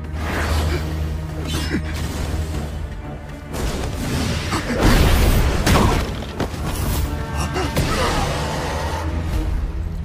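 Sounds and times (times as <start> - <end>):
low drone score: 7.0 - 10.0.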